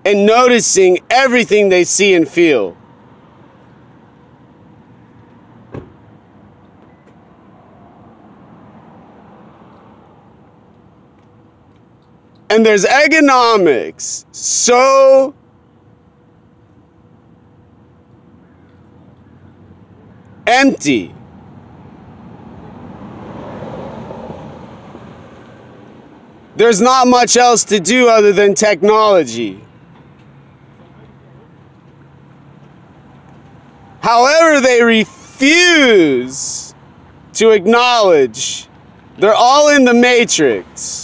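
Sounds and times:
vehicle passing: 2.5 - 12.3, 18.9 - 26.6
short thump: 5.7 - 6.0.

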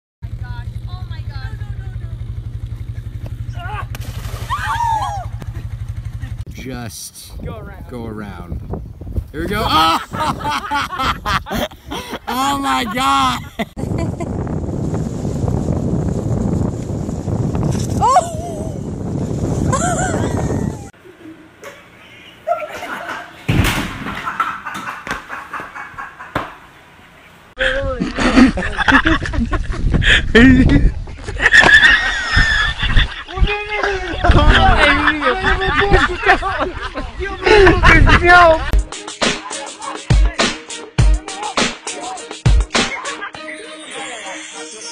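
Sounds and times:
steady low rumble: 0.2 - 12.3.

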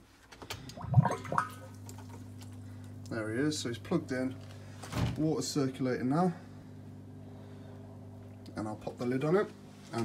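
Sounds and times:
water pump humming: 0.5 - 10.0
water pump gurgle: 0.6 - 4.1.

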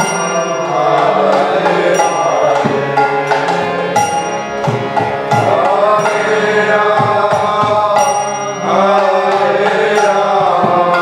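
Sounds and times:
man singing a devotional chant: 0.0 - 4.0, 5.3 - 11.0
harmonium chords: 0.0 - 11.0.

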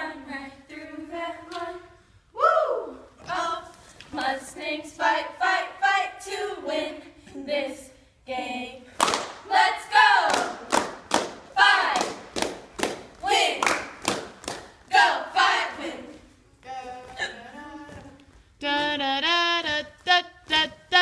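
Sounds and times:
voices singing held line: 0.0 - 8.9, 14.9 - 21.0
cheerleaders chanting: 0.0 - 21.0
sharp hand claps: 10.3 - 14.7.

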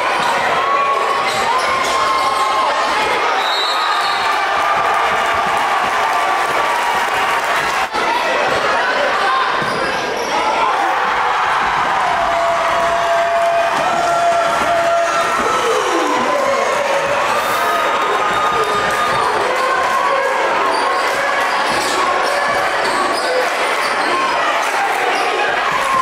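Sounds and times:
crowd voices: 0.0 - 26.0.

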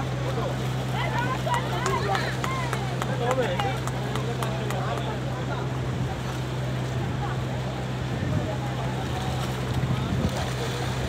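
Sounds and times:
boat engine humming: 0.0 - 11.0
wind buffeting microphone: 8.0 - 11.0.

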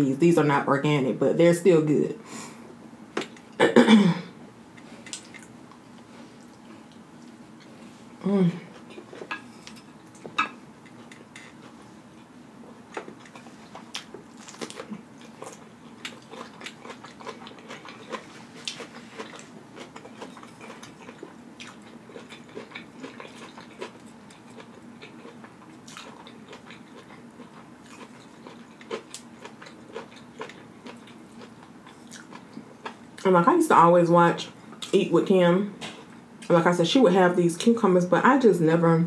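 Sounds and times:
crunchy chewing of cucumber: 12.9 - 33.2.

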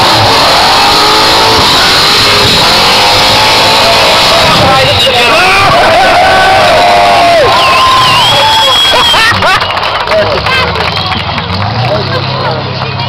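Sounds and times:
car engine revving: 0.0 - 13.0
crowd cheering and shouting: 0.0 - 13.0.

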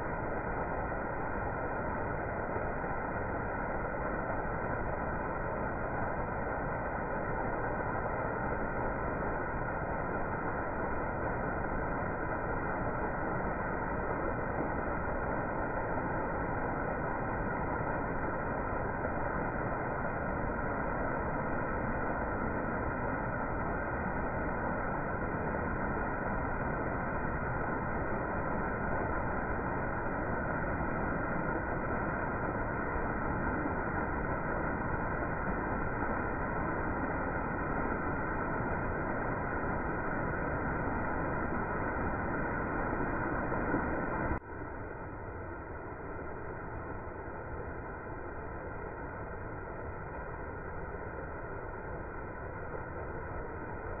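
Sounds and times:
water rushing over weir: 0.0 - 54.0
waterfall: 0.0 - 54.0.

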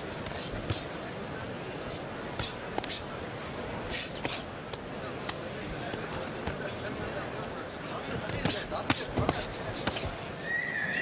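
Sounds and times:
arena crowd hubbub: 0.0 - 11.0.

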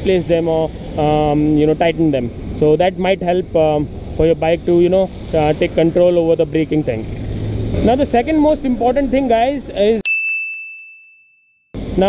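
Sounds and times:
bell-like ding: 10.0 - 11.7.

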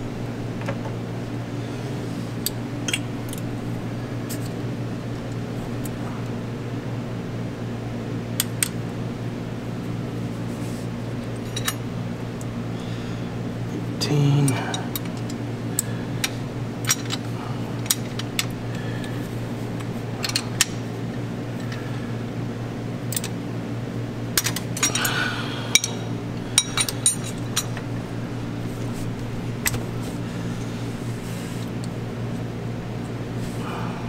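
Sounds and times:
steady low hum: 0.0 - 34.0.

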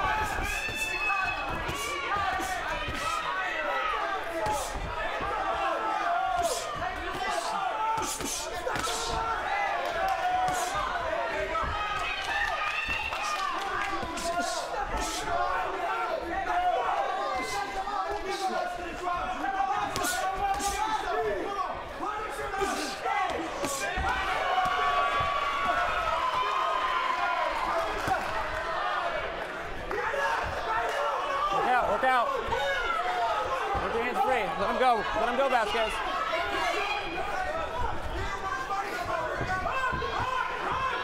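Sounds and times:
crowd shouting: 0.0 - 41.0.

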